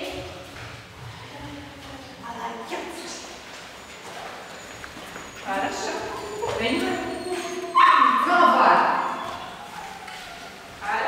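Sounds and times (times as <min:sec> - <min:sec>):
indistinct talking echoing: 0:00.0 - 0:11.0
footsteps on hard floor: 0:00.1 - 0:02.2, 0:03.3 - 0:07.7, 0:09.2 - 0:10.8.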